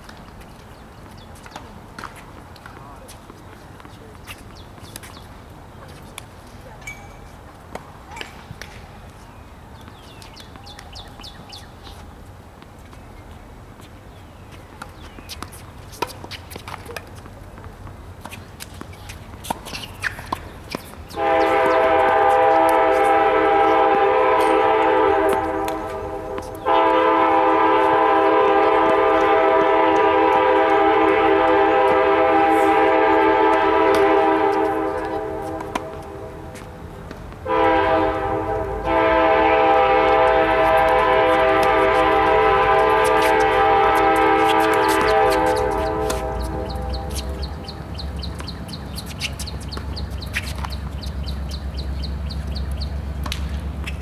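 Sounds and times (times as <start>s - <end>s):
train horn blasts: 21.2s - 36.5s, 37.4s - 47.5s.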